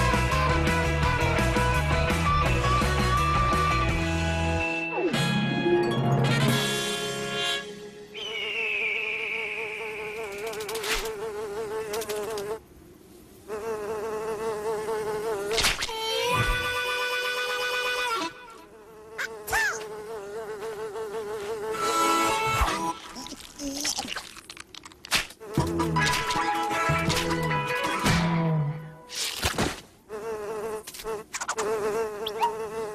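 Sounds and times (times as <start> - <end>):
cartoon fly buzzing: 6.4 - 12.6, 13.5 - 28.0, 29.1 - 32.9
falling whistle: 8.1 - 10.4.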